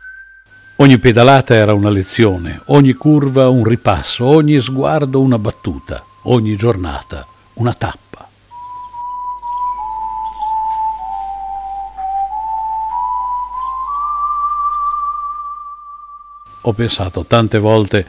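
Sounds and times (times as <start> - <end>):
slow whistled melody: 0.0 - 7.8, 8.5 - 17.1.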